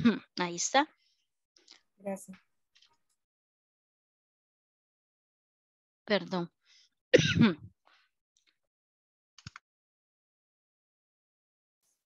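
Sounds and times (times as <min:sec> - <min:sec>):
person clearing throat: 0:07.2 - 0:07.7.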